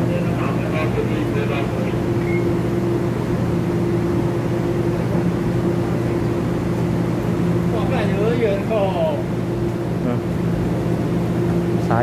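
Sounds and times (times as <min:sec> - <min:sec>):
electric train electrical hum: 0:00.0 - 0:12.0.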